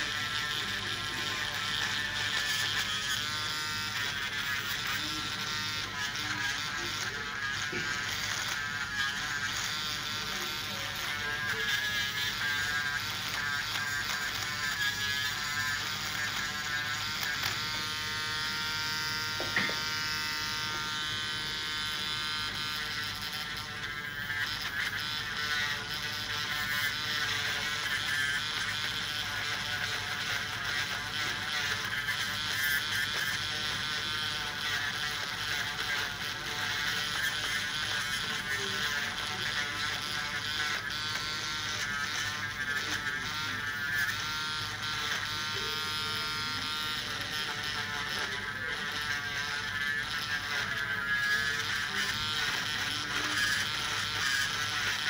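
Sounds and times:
electric nail drill whining: 0:00.0 - 0:55.0.

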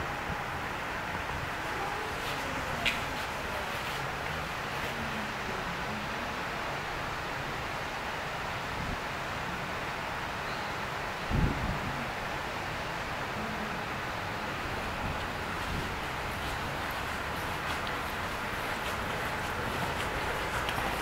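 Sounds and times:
outdoor background hiss: 0:00.0 - 0:21.0
wind on microphone: 0:11.2 - 0:12.3, 0:14.4 - 0:21.0.

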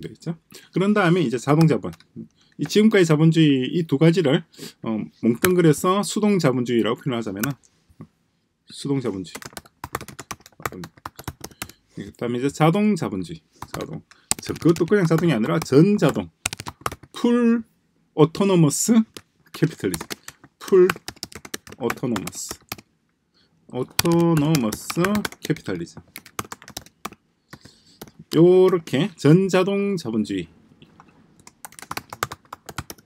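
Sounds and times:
computer keyboard typing: 0:09.3 - 0:11.8, 0:13.6 - 0:17.1, 0:19.1 - 0:22.8, 0:23.9 - 0:29.0, 0:31.4 - 0:33.0.

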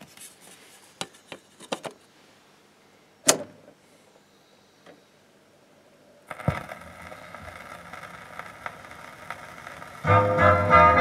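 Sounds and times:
record surface hiss and crackle: 0:00.0 - 0:11.0
stylus thump on record: 0:06.3 - 0:06.8.

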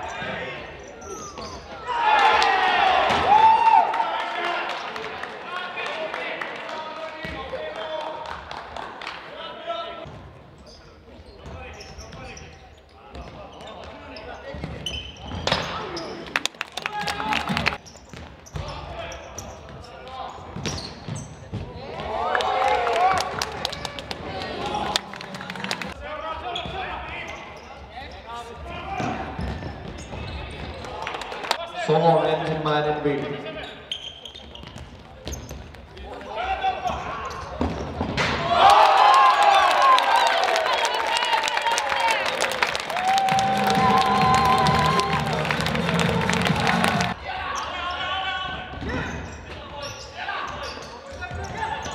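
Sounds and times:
shouts and cheering: 0:01.8 - 0:07.0, 0:21.9 - 0:25.0, 0:38.4 - 0:47.4
players shouting: 0:38.2 - 0:48.2.

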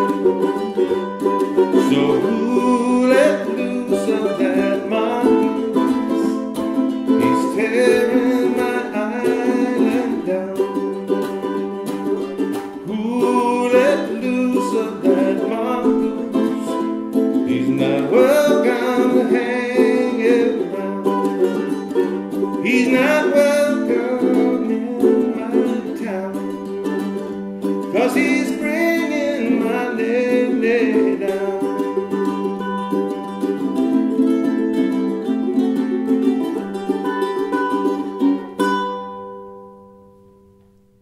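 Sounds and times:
ukuleles playing: 0:00.0 - 0:41.0.

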